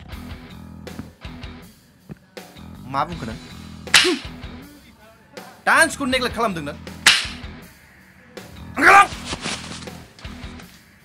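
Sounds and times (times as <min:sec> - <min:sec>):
low background music: 0:00.0 - 0:11.0
sharp crack hit effect: 0:07.0 - 0:07.4.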